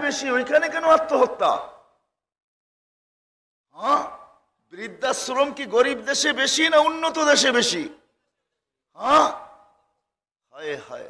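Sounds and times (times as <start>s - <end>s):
man speaking into a microphone: 0.0s - 1.9s, 3.9s - 8.1s, 10.5s - 11.0s.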